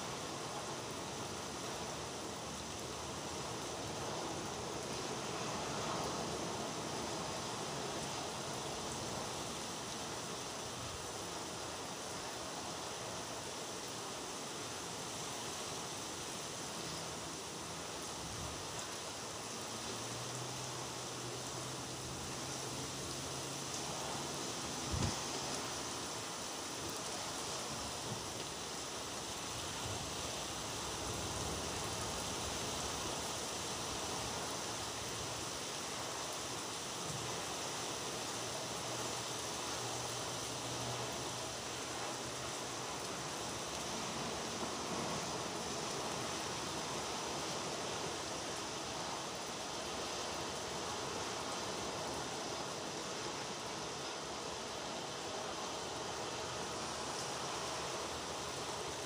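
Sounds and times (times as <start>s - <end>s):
steady rain falling: 0.0s - 59.0s.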